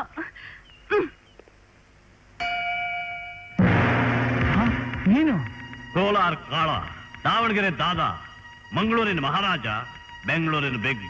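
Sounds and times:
bell-like chime ringing: 2.4s - 7.6s.

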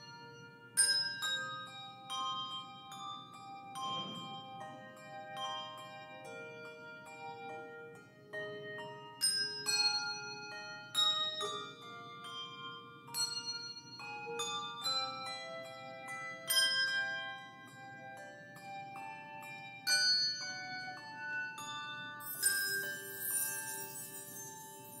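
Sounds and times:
handbell choir playing: 0.0s - 25.0s.

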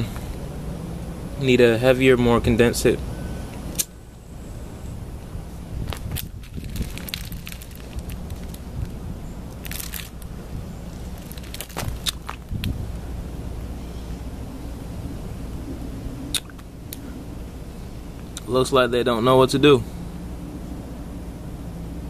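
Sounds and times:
low outdoor rumble: 0.0s - 22.0s
burning crackles: 5.2s - 13.7s.

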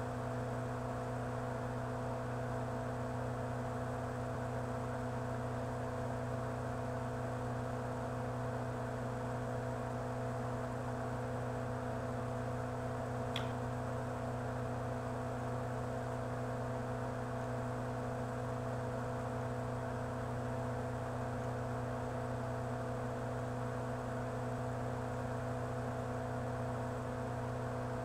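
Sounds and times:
low electrical mains hum: 0.0s - 28.0s.

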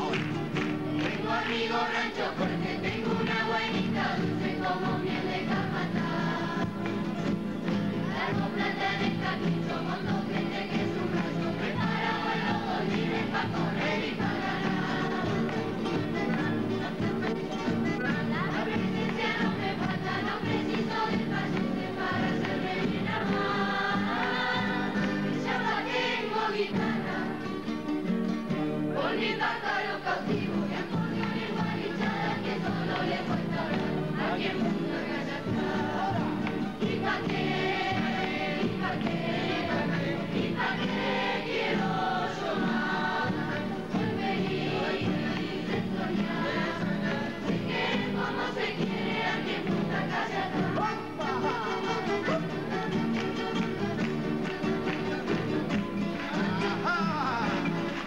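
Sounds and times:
group singing: 0.0s - 28.0s, 28.6s - 58.0s
strummed acoustic guitars: 0.0s - 58.0s.

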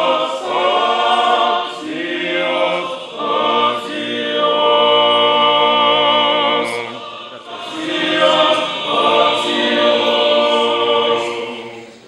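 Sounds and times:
choir singing unaccompanied: 0.0s - 12.0s.

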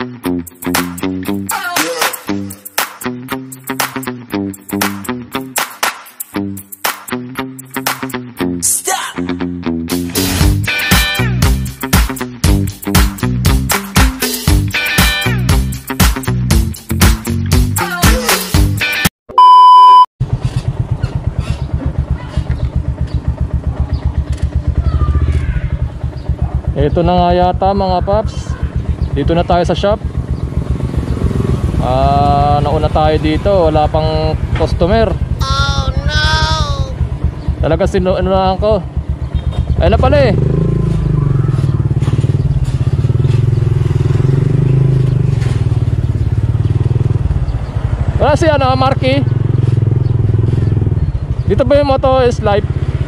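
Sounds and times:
motorcycle engine running: 20.2s - 53.0s.

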